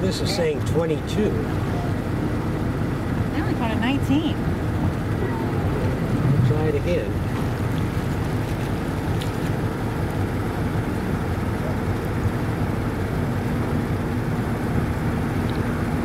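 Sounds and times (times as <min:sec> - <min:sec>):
motorboat engine running: 0:00.0 - 0:16.0.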